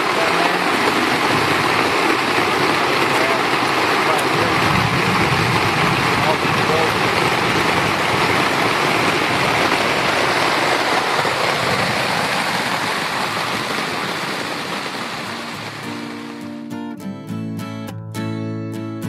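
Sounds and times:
heavy rain on grass: 0.0 - 16.6.

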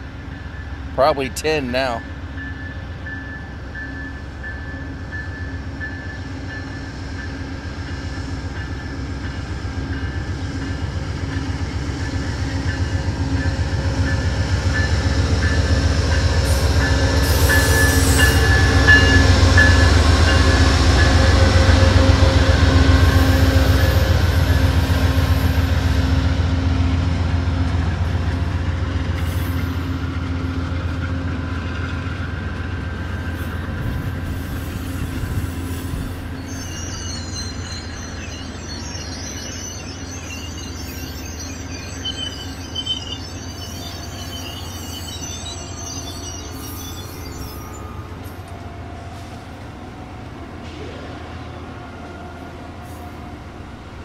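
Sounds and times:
diesel locomotive engine: 0.0 - 54.0
train wheels on rails: 0.0 - 54.0.

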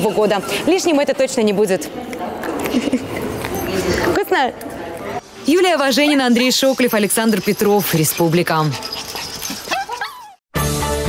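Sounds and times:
small dog crying: 8.8 - 10.4
music: 10.5 - 11.0.

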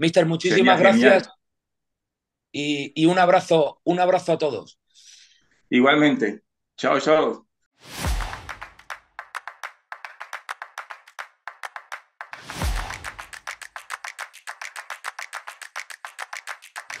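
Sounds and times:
deep whooshing thump: 7.9 - 8.7
fast sharp clicking taps: 8.8 - 17.0.

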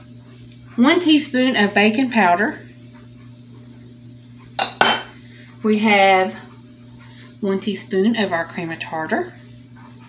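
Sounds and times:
low steady hum: 0.0 - 10.0
kitchenware clinking: 4.6 - 5.2.

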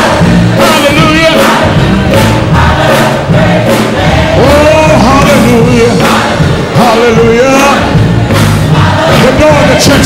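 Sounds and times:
choir singing gospel music: 0.0 - 10.0.

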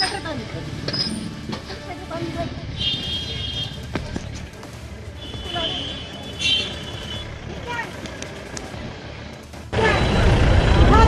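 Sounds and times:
traffic: 0.0 - 11.0
loud crowd noise: 9.7 - 11.0.

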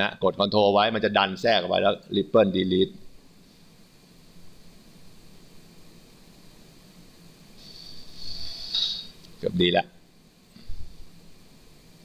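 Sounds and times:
microphone hiss: 0.0 - 12.0
soft hiss with high whistle: 3.3 - 10.0.

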